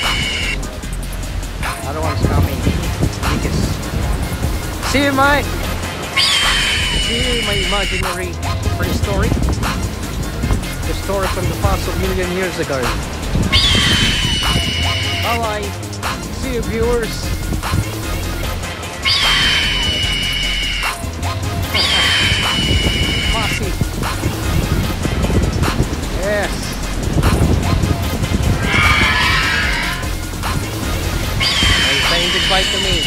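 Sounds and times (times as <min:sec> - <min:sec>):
high creature screech: 0:00.0 - 0:00.6, 0:06.2 - 0:08.1, 0:13.5 - 0:15.3, 0:19.0 - 0:21.0, 0:21.7 - 0:23.6, 0:28.6 - 0:30.1, 0:31.4 - 0:33.0
background music: 0:00.0 - 0:33.0.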